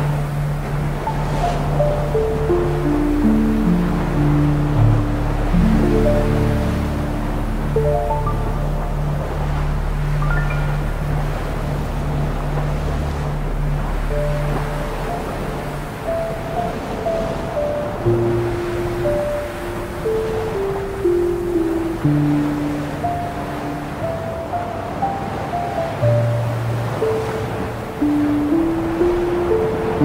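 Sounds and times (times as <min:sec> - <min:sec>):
ambient music with drone notes: 0:00.0 - 0:30.0
ocean surf: 0:00.0 - 0:30.0.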